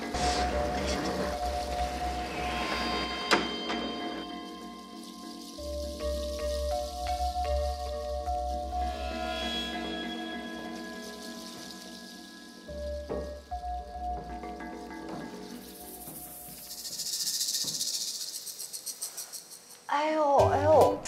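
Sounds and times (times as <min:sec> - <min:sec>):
soft sustained background score: 0:00.0 - 0:19.8
fast high rattle: 0:00.0 - 0:19.9.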